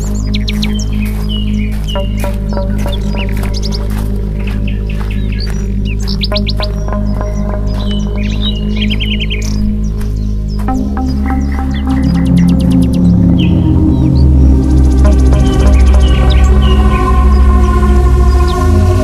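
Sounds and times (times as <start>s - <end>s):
background music with low drone: 0.0s - 19.0s
birds chirping and trilling: 0.0s - 19.0s.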